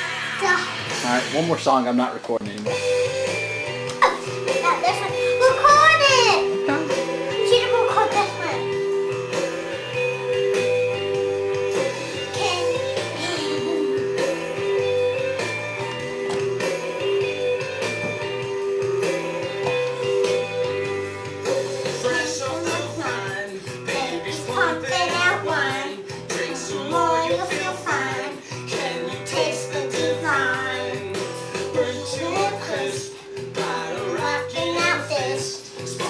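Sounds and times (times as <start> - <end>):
bass line: 4.7 - 28.2
person singing: 11.9 - 14.6, 21.6 - 36.0.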